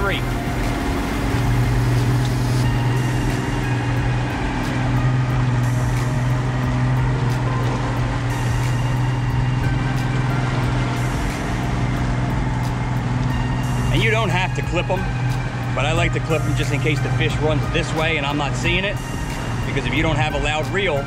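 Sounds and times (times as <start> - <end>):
boat engine droning: 0.0 - 21.0
water rushing: 0.0 - 21.0
wind: 0.0 - 21.0.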